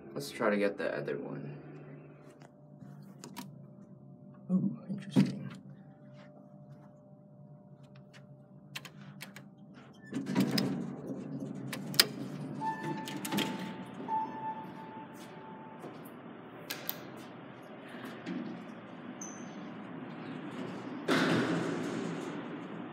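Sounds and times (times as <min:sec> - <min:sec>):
elevator doors rushing noise: 0:09.9 - 0:22.9
steady tone: 0:12.6 - 0:16.5
loud thud: 0:21.1 - 0:22.3.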